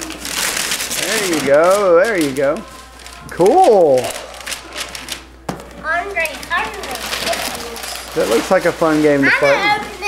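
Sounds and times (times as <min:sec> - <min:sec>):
wrapping paper tearing: 0:00.0 - 0:10.0.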